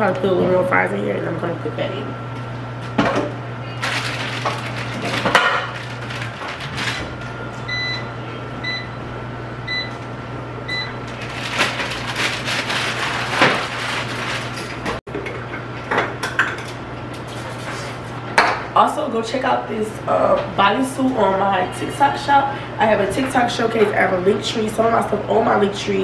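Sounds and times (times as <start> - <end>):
household items clattering: 3.8 - 7.2, 11.1 - 15.0.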